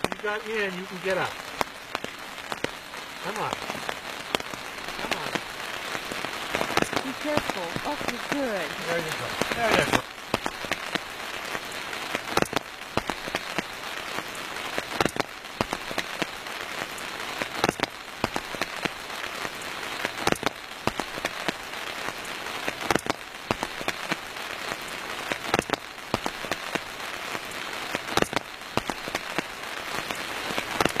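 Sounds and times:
rain falling: 0.0 - 31.0.

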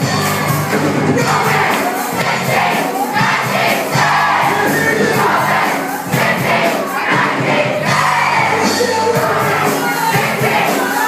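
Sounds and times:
crowd singing along: 0.0 - 11.0
live band with drums and guitars: 0.0 - 11.0.

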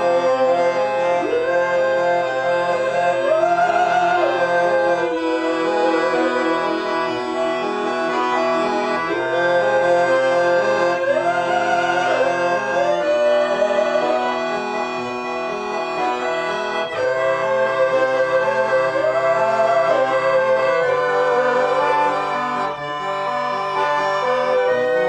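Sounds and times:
accordion chords: 0.0 - 25.0
violin melody: 0.0 - 25.0.

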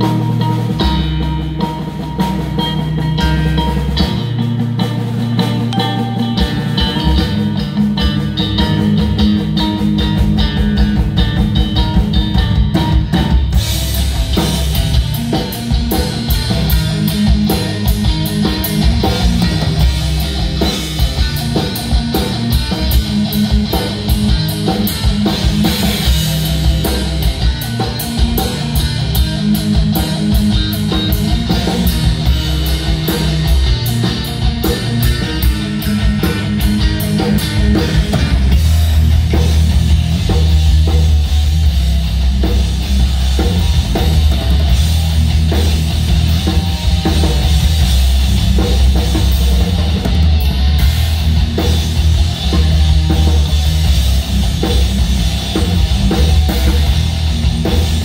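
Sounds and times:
drum kit and cymbals: 0.0 - 58.0
electric guitar and bass riffing: 0.0 - 58.0.

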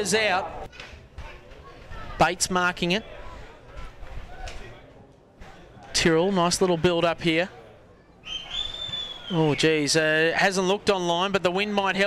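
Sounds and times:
outdoor ambience: 0.0 - 12.0.

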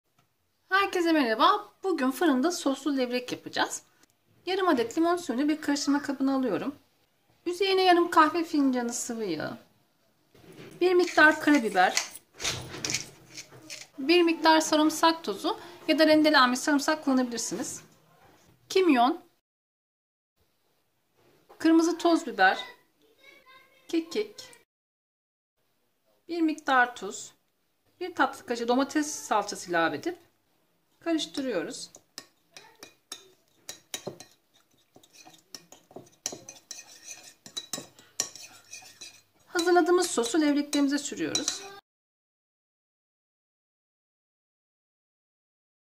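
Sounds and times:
metal spoon stirring in ceramic bowl: 10.7 - 14.0, 31.2 - 41.8
pepper mill grinding: 11.0 - 12.1, 12.9 - 14.0.

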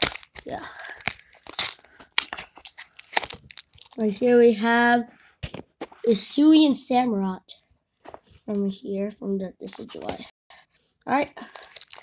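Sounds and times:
foil wrapper tearing and crinkling: 0.0 - 4.0, 11.4 - 12.0.

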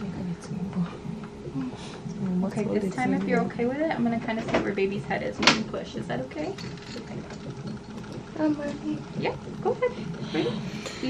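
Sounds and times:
fetal heartbeat whooshing: 3.6 - 11.0
woman speaking: 8.3 - 10.6.

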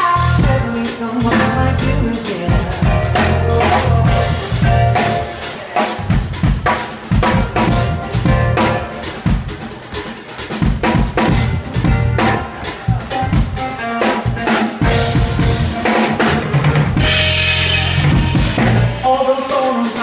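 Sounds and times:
drum kit beat: 0.0 - 20.0
held keyboard notes: 7.1 - 10.1.

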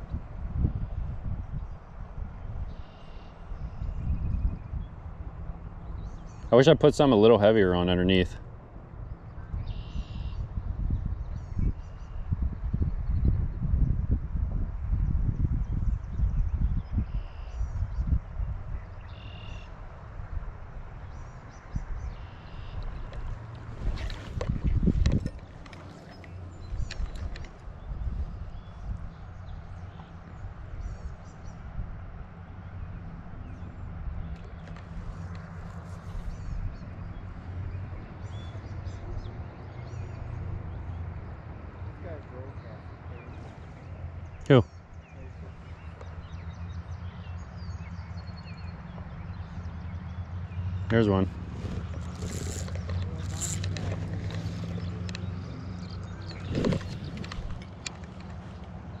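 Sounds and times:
wind and water rumble on microphone: 0.0 - 59.0
high bird calls: 9.3 - 10.6, 21.1 - 31.7, 32.6 - 59.0.

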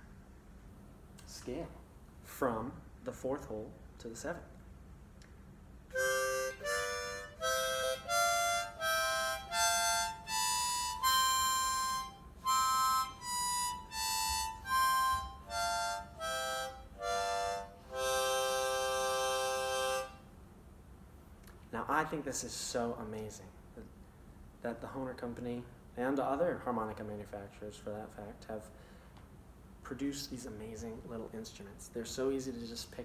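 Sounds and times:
harmonica chord: 5.9 - 20.3
harmonica playing a scale: 5.9 - 20.3.

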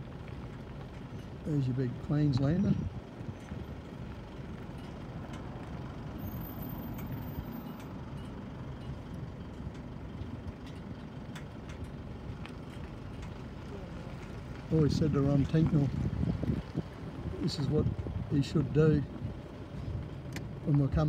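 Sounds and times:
road traffic rumble: 0.0 - 21.0.

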